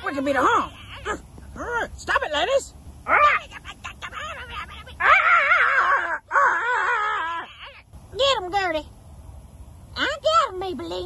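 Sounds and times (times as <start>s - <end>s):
high wailing cries: 3.0s - 7.9s.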